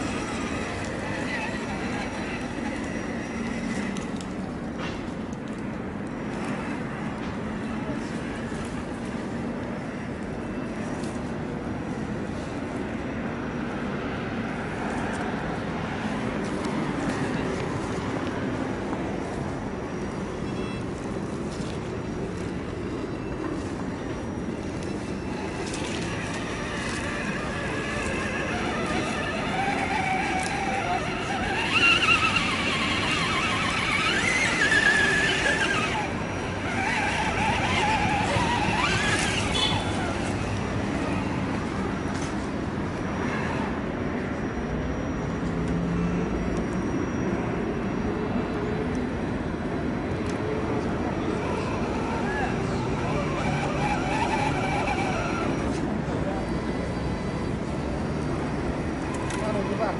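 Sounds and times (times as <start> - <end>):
electric motor and gearbox whining: 0.0 - 13.0, 13.6 - 44.4, 48.4 - 59.9.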